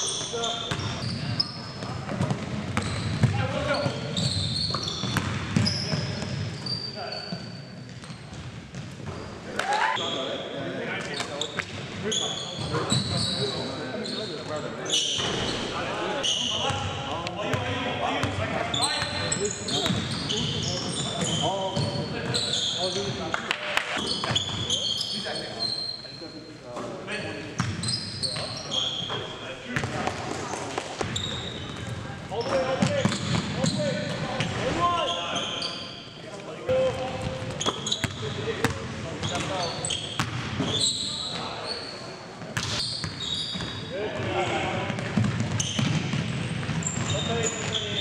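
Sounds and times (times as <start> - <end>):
sneakers squeaking: 0.0 - 48.0
players calling out: 9.5 - 10.4.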